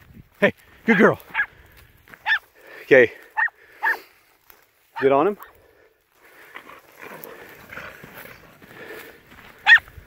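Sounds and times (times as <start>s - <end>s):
dog barking: 1.3s - 1.5s, 2.2s - 2.5s, 3.4s - 4.1s, 4.9s - 5.5s, 9.6s - 9.9s.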